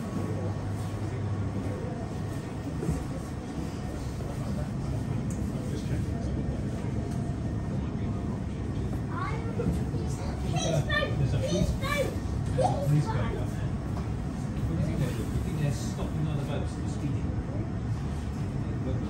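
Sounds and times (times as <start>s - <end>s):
indistinct voices of passengers: 0.0s - 19.0s.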